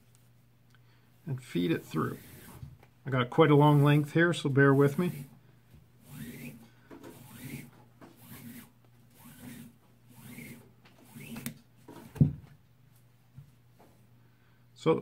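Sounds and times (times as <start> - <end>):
cord rubbing swish: 1.7 - 2.8, 3.6 - 5.4, 6.0 - 12.3
thump: 12.1 - 12.5.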